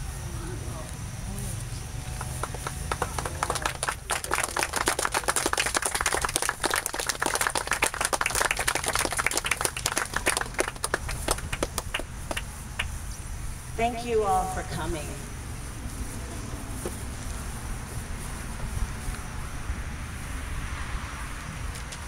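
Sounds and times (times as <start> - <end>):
small crowd clapping: 2.1 - 13.0.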